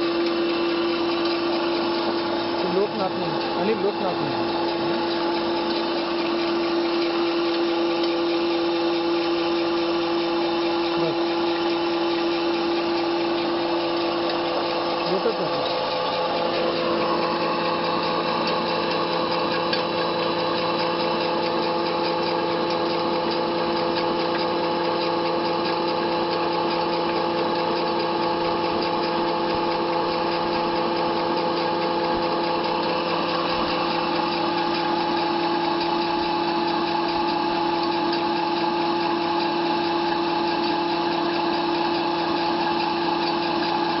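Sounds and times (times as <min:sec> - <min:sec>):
pellet extruder humming: 0:00.0 - 0:44.0.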